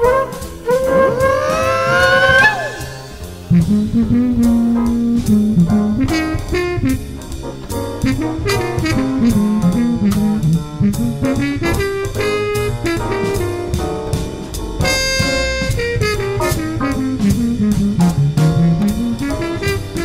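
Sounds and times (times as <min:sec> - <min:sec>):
low horn melody: 0:00.0 - 0:07.4, 0:08.0 - 0:14.0, 0:14.8 - 0:20.0
jazz band playing: 0:00.0 - 0:20.0
rising sliding notes: 0:00.7 - 0:04.6.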